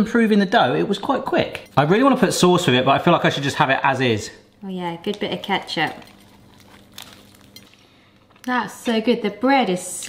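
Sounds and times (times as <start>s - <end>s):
faint steady hum: 0.0s - 10.0s
bread being chewed: 5.1s - 8.5s.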